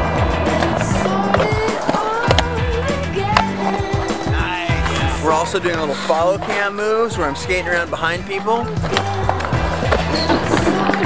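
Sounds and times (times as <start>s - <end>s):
skateboard clacks: 0.0s - 7.1s, 8.1s - 11.0s
background music with bass line: 0.0s - 11.0s
skateboard wheels rolling on concrete: 0.0s - 11.0s.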